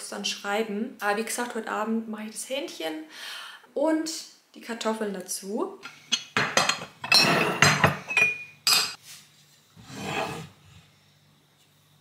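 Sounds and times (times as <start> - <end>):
glass jars clinking: 5.9 - 9.0.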